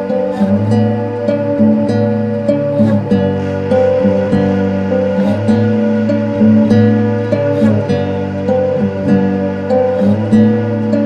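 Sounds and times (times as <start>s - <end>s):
acoustic guitar playing chords: 0.0s - 11.0s.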